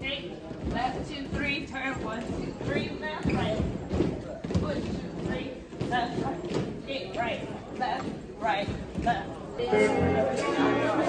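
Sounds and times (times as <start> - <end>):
footsteps on hollow stage: 0.0 - 10.4
crowd chatter: 0.0 - 11.0.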